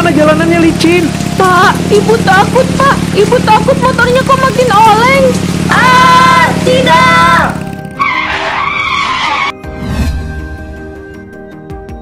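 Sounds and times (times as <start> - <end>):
background music: 0.0 - 12.0
motorbike tyre screech: 5.7 - 9.6.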